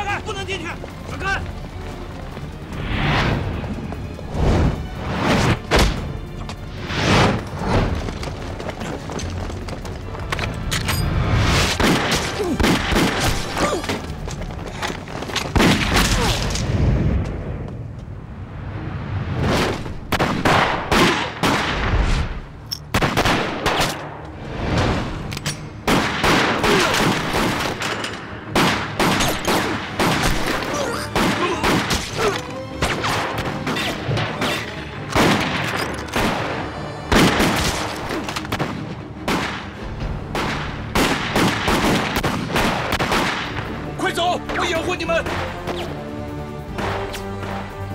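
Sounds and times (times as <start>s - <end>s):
pistol gunshots: 40.3s - 43.6s.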